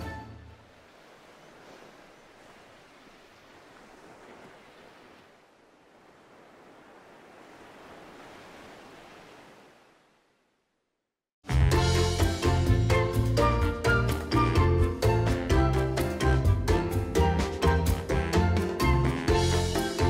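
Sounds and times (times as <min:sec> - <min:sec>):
surf-like noise: 0:00.3 - 0:10.5.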